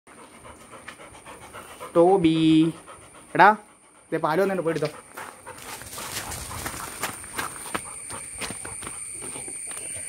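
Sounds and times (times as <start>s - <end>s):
dog panting: 0.1s - 10.0s.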